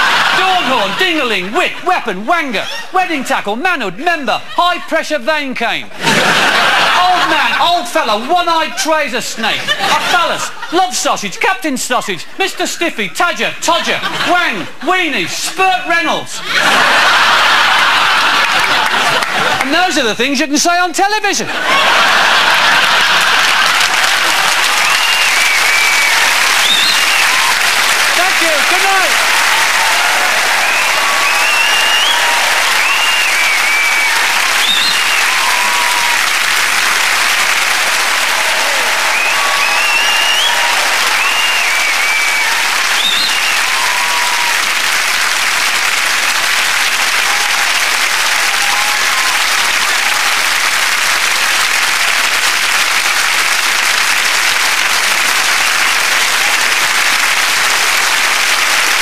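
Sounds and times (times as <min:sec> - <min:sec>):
audience applauding: 0:00.0 - 0:01.7, 0:16.5 - 0:19.8, 0:21.6 - 0:59.0
cheers and whoops: 0:23.6 - 0:36.6, 0:37.5 - 0:44.9, 0:46.8 - 0:50.8.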